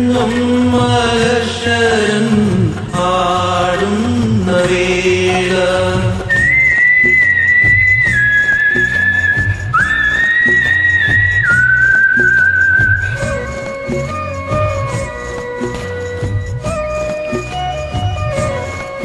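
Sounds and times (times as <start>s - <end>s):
bass line: 0.0s - 19.0s
rhythmic percussion: 0.0s - 19.0s
whistle-like melody: 6.2s - 19.0s.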